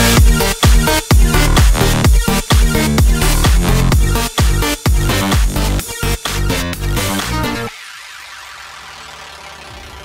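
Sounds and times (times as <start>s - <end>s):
helicopter cabin drone: 0.0s - 10.0s.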